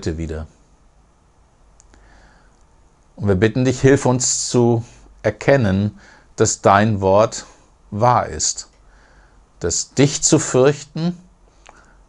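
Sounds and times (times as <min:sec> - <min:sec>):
faint small clicks: 0:01.7 - 0:02.8, 0:11.6 - 0:12.0.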